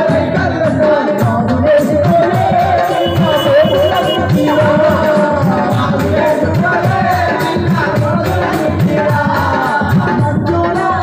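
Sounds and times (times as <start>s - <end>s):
people singing into microphones: 0.0s - 11.0s
backing music with low beat: 0.2s - 9.4s.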